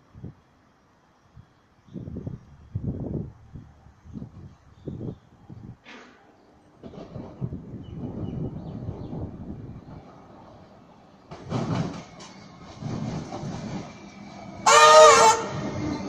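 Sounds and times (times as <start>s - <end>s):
train wheels clacking over rails: 5.8s - 16.0s
train horn blast: 14.6s - 15.8s.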